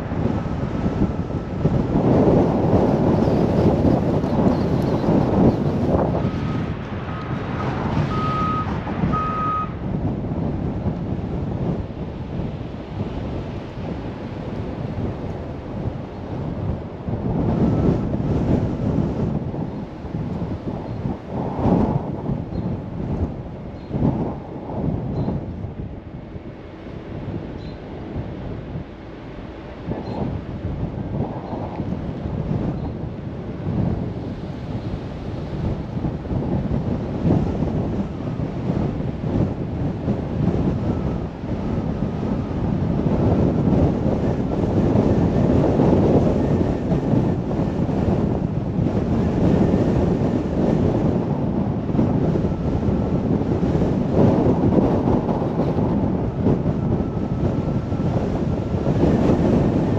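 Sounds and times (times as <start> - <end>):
car road noise: 0.0 - 59.9
wind buffeting microphone: 0.0 - 59.9.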